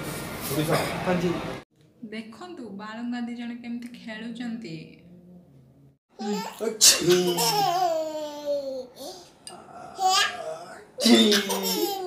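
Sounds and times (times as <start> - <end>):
baby laughing: 6.2 - 9.1, 10.0 - 12.0.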